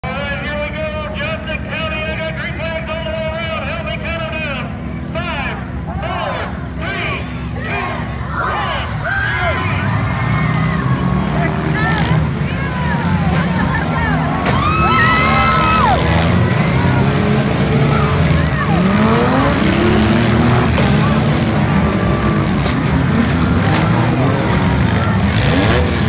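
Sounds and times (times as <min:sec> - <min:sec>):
car engines idling and revving: 0:00.0 - 0:26.0
voices: 0:00.0 - 0:26.0.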